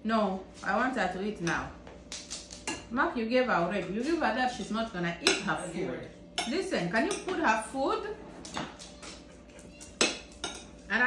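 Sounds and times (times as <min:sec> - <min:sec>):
cutlery clinking on plates: 0:08.5 - 0:10.9.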